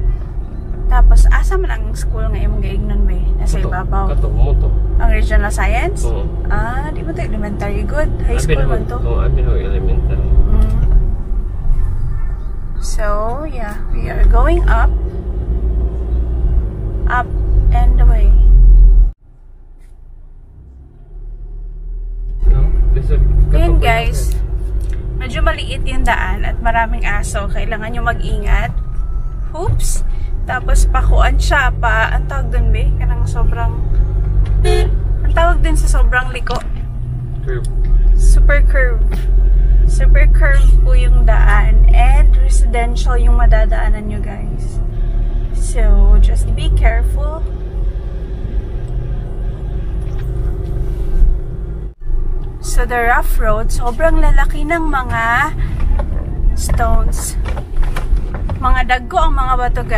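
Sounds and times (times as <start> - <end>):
car engine inside cabin: 0.0 - 59.9
road rumble: 0.0 - 59.9.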